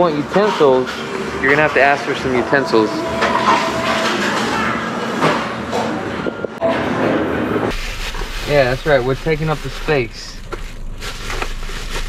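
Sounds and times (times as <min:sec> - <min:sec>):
busy restaurant kitchen din: 0:00.0 - 0:12.0.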